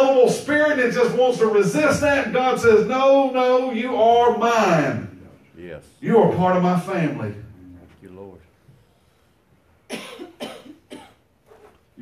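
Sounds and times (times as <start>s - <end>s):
man coughing: 9.9s - 11.3s.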